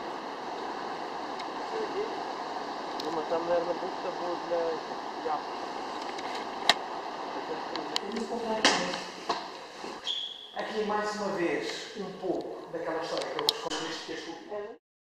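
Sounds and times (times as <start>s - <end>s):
steady outdoor noise: 0.0s - 14.8s.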